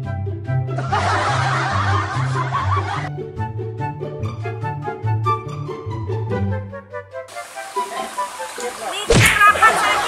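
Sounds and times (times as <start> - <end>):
light background music: 0.0 - 8.9
canned crowd laughter: 0.8 - 3.1, 9.4 - 10.0.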